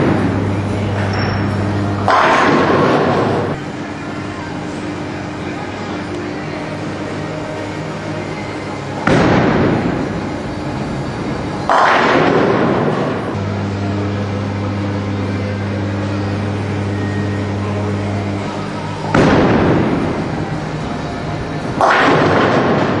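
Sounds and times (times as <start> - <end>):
bowling pins crashing: 0.0 - 3.6, 9.0 - 13.4, 18.5 - 23.0
steady low hum: 0.0 - 23.0.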